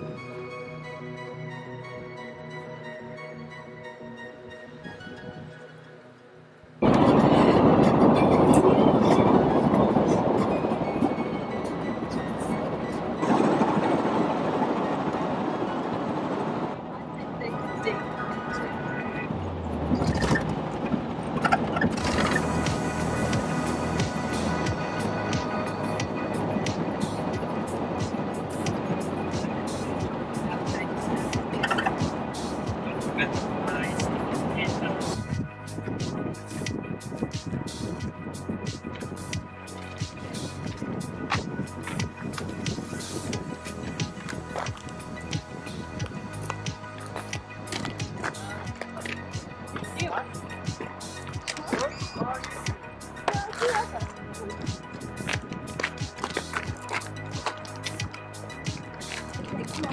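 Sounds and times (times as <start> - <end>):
background music: 0.0 - 59.9
moving vehicle running noise: 6.6 - 59.9
indistinct voices: 47.8 - 58.0.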